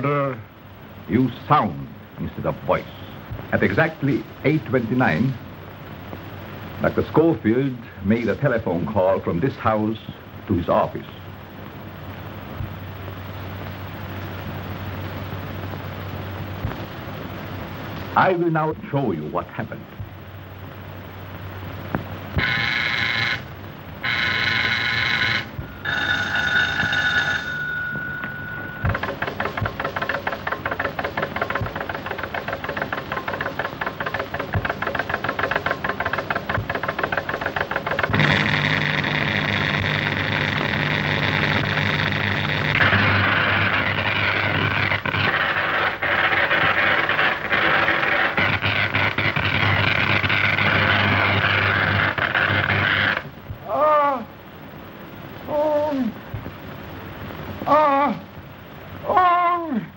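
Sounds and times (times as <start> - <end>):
pitched electrical hum: 0.0 - 59.9
electrical buzz: 19.9 - 53.7
short pitched tones: 22.4 - 53.3.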